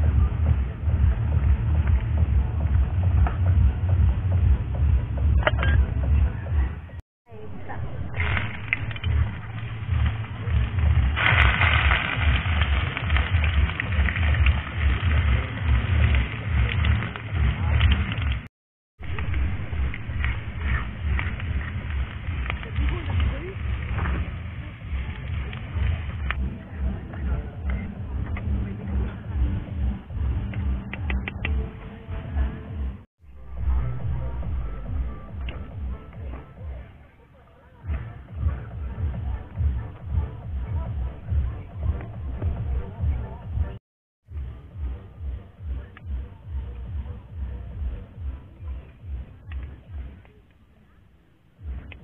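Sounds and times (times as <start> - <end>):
wind rumbling on microphone: 0.0 - 36.8.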